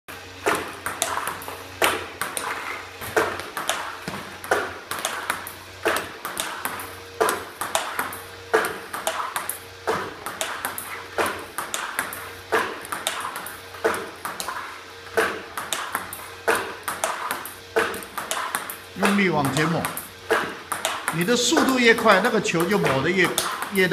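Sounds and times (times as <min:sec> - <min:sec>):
ball hitting table tennis bat: 0:00.3 - 0:23.9
ball bouncing on table: 0:00.4 - 0:23.9.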